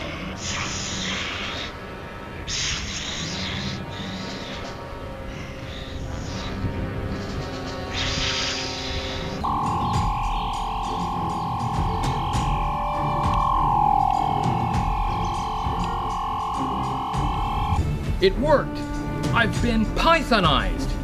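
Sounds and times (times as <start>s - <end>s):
shimmering electronic rush: 9.4s - 17.8s
steady electronic tone: 9.4s - 17.8s.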